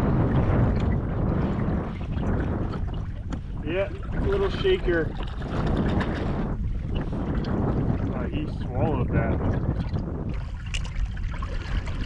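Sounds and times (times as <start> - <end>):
water sloshing against kayak: 0.0 - 12.0
wind buffeting microphone: 0.0 - 12.0.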